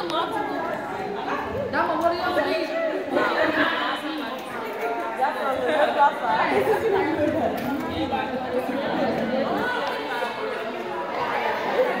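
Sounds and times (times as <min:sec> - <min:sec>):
girls chattering: 0:00.0 - 0:12.0.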